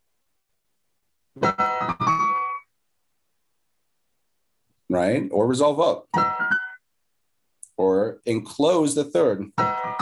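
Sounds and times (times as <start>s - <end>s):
keyboard chords: 1.4s - 2.8s, 6.0s - 6.8s, 9.5s - 10.0s.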